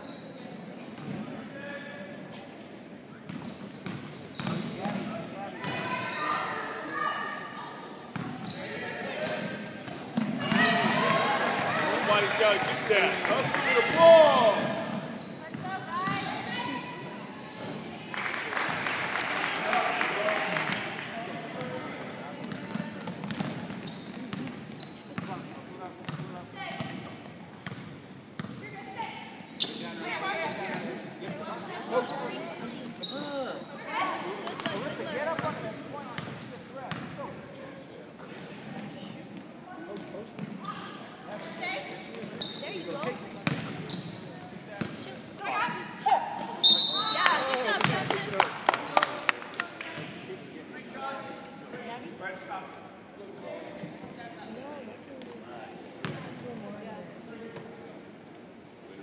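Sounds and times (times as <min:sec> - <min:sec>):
sneakers squeaking on gym floor: 0:00.0 - 0:01.5, 0:03.2 - 0:07.5, 0:08.1 - 0:13.1, 0:13.8 - 0:18.0, 0:22.5 - 0:33.8, 0:34.5 - 0:37.3, 0:38.8 - 0:47.8, 0:52.0 - 0:54.3, 0:56.0 - 0:58.2
basketball bouncing: 0:23.1 - 0:23.8
referee's whistle: 0:46.6 - 0:47.4.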